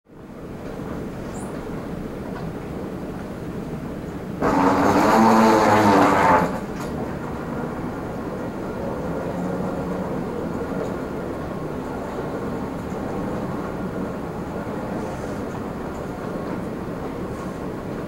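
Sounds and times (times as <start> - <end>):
moving walkway drone: 0.2 - 18.0.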